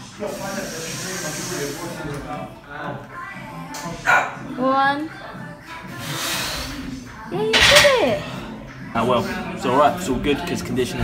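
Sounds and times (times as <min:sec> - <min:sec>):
gym music with steady beat: 0:00.0 - 0:11.0
forced breathy exhale: 0:06.0 - 0:06.8.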